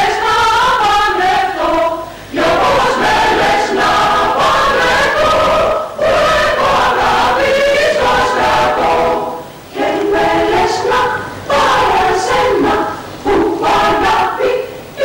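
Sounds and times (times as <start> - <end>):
mixed choir singing in harmony: 0.0 - 15.0.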